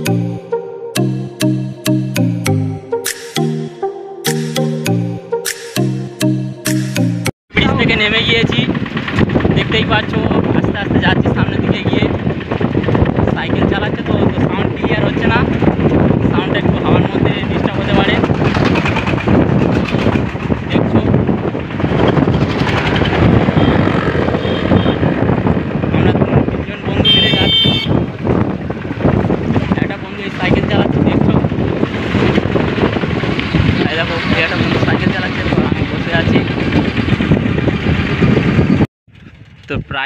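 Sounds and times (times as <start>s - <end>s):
vehicle rumbling: 7.5s - 40.0s
wind buffeting microphone: 7.5s - 40.0s.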